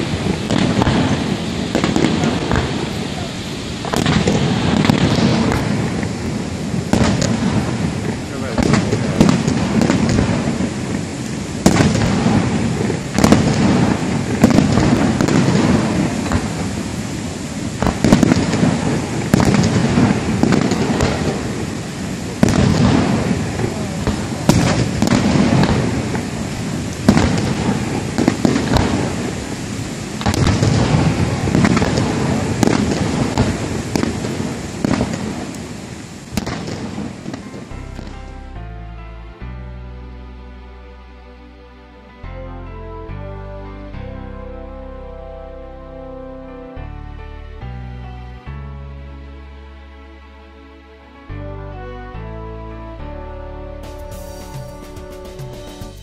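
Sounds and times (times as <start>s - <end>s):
fireworks bangs: 0.0s - 38.8s, 53.8s - 56.0s
low rumble: 37.2s - 54.0s.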